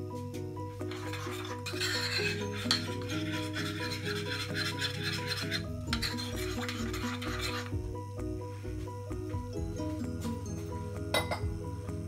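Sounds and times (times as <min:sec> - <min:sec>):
background music: 0:00.0 - 0:12.0
spoon scraping batter in bowl: 0:00.9 - 0:07.8.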